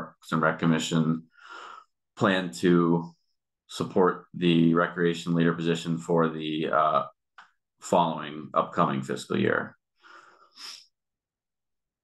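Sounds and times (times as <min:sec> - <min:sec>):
man breathing into microphone: 0:01.3 - 0:01.9.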